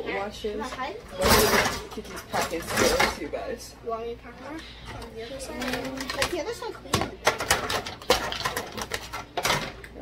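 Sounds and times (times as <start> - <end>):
plastic containers clattering on rack: 1.2 - 3.2, 5.6 - 10.0.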